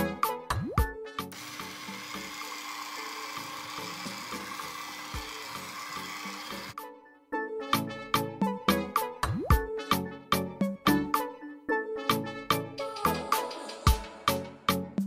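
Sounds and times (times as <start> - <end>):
upbeat plucked background music: 0.0 - 15.0
electric hand mixer running: 1.3 - 6.8.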